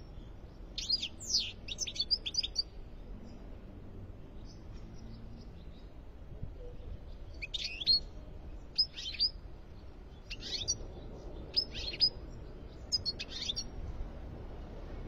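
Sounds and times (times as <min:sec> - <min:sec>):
bird twittering song: 0:00.0 - 0:03.5, 0:04.2 - 0:06.0, 0:06.6 - 0:13.8.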